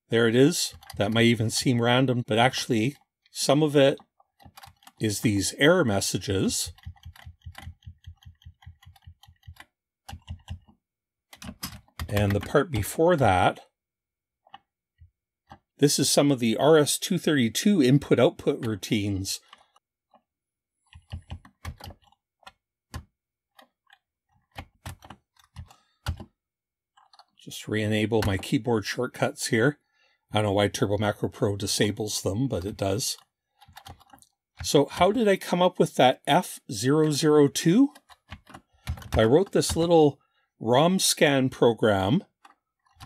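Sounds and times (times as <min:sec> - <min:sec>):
keyboard keys clicking: 0:06.7 - 0:12.6, 0:20.9 - 0:26.3.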